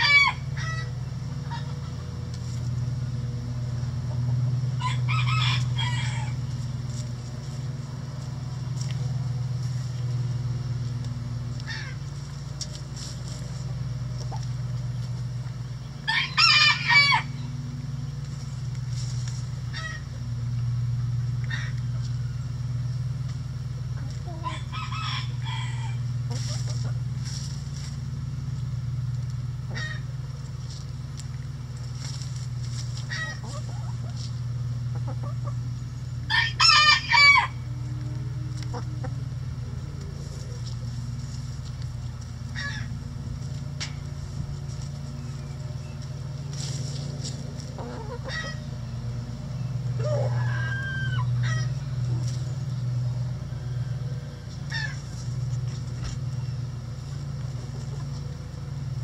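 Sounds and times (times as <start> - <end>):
rooster crowing: 0.0 - 0.9, 4.8 - 6.4, 16.1 - 17.4, 24.3 - 26.1, 36.3 - 37.7, 50.0 - 51.8
chickens clucking: 0.0 - 7.6, 8.2 - 17.5, 21.4 - 28.0, 29.2 - 59.0
low hum: 0.0 - 59.0.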